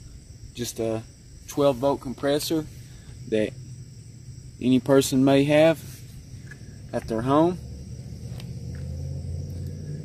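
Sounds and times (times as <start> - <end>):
low rumble: 6.0 - 10.0.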